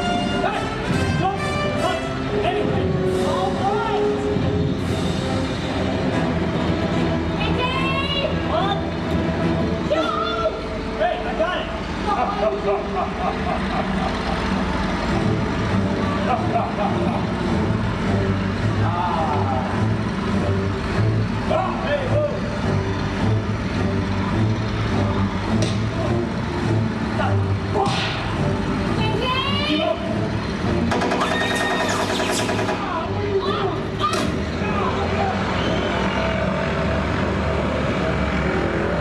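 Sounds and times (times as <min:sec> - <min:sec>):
low plane engine drone: 0:00.0 - 0:39.0
people shouting: 0:00.1 - 0:04.2, 0:09.8 - 0:12.6, 0:27.1 - 0:28.3, 0:31.2 - 0:36.3.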